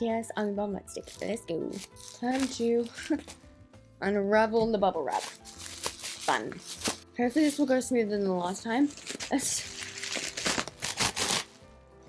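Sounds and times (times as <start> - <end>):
soft background music: 0.0 - 12.0
bubble wrap crinkling: 0.9 - 3.4, 5.1 - 7.8, 8.4 - 11.7.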